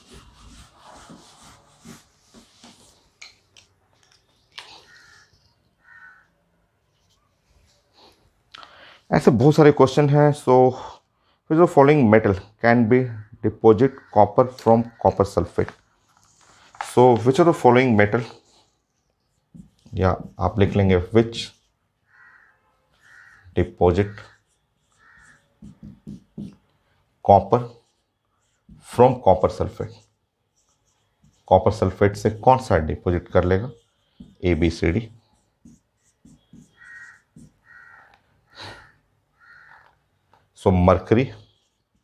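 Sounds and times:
man speaking: 0:09.1 - 0:15.8, 0:16.8 - 0:18.4, 0:19.9 - 0:21.6, 0:23.6 - 0:24.4, 0:27.2 - 0:27.8, 0:28.8 - 0:30.0, 0:31.4 - 0:33.8, 0:34.4 - 0:35.2, 0:40.6 - 0:41.5
whiteboard marker squeaking: 0:16.8 - 0:26.7, 0:27.4 - 0:38.2, 0:38.8 - 0:42.0
sharp marker tap: 0:25.0 - 0:26.8, 0:35.6 - 0:38.2.

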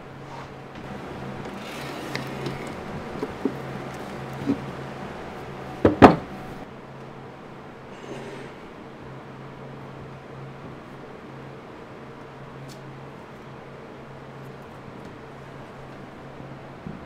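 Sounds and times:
steady low hum: 0:00.0 - 0:17.0
loud double knock: 0:05.8 - 0:06.4.

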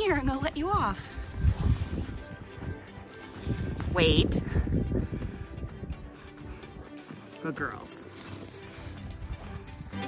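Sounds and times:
soft background music: 0:00.0 - 0:10.0
leash clicks: 0:03.2 - 0:04.4, 0:05.2 - 0:10.0
dogs moving in snow: 0:07.1 - 0:10.0.

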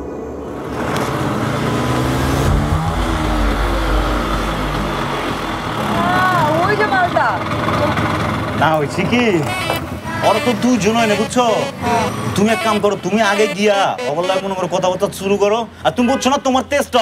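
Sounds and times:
motor scooter engine running: 0:04.3 - 0:12.9
voices calling out: 0:04.3 - 0:16.8.

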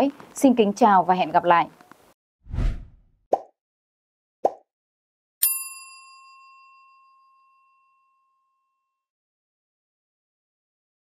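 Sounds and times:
bright bell ding: 0:05.4 - 0:08.4.

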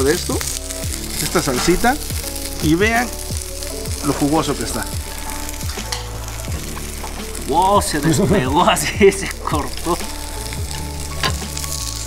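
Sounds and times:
meat sizzling on a grill: 0:00.0 - 0:12.0
soft background music: 0:00.0 - 0:12.0.

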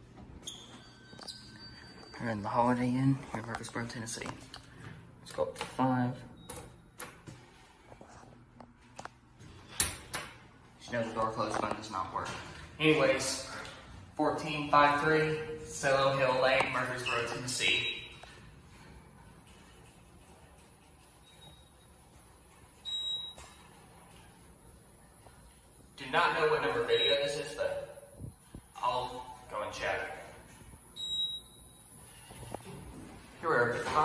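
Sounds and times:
high electronic elevator beep: 0:22.8 - 0:23.6, 0:26.8 - 0:27.6, 0:30.9 - 0:31.9.

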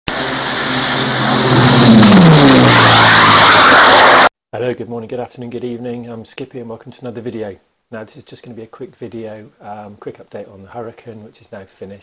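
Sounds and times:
engine passing at speed: 0:00.1 - 0:04.3
rushing noise: 0:00.1 - 0:04.3.

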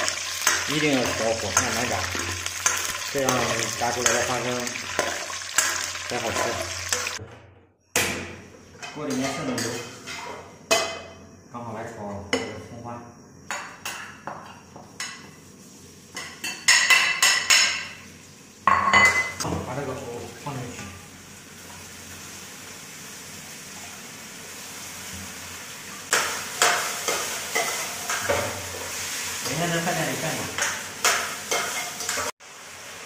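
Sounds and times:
food sizzling in hot oil: 0:00.0 - 0:07.2, 0:15.1 - 0:33.0
wok clattering: 0:00.0 - 0:07.2, 0:26.1 - 0:32.4.

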